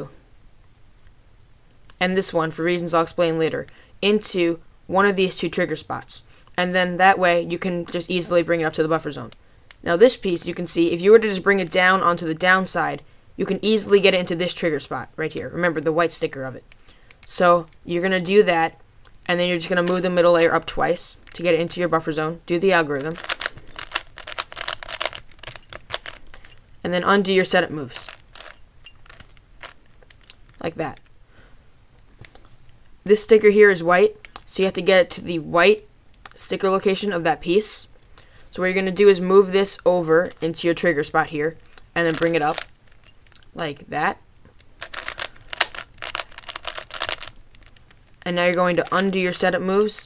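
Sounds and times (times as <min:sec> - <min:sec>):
puzzle cube plastic clicks: 0:15.3 - 0:18.4, 0:19.3 - 0:26.6, 0:27.4 - 0:31.2, 0:34.1 - 0:34.6, 0:40.2 - 0:43.6, 0:44.5 - 0:50.0.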